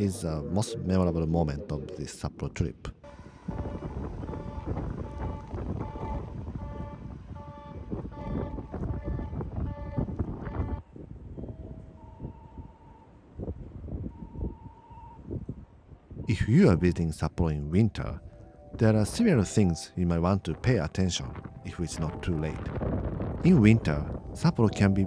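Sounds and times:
electric train pulling away: 3.0 - 10.6.

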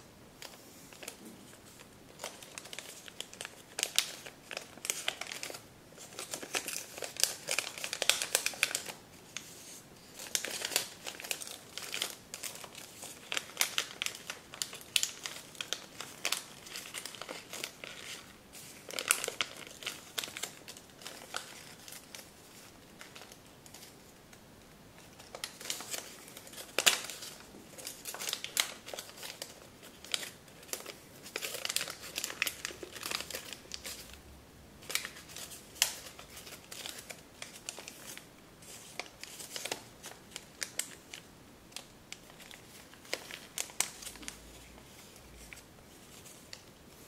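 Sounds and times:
paper crinkling: 0.4 - 24.1, 25.0 - 34.2, 34.8 - 47.0.

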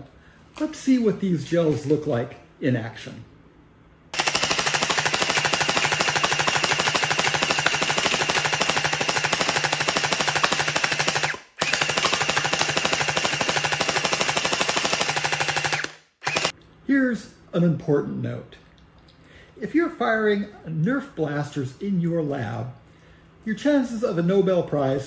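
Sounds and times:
motor whir: 4.2 - 16.5
toy blaster firing full-auto: 4.2 - 16.6.

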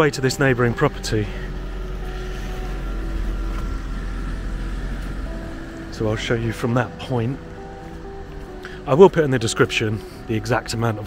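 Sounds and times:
car driving past: 0.3 - 9.3.

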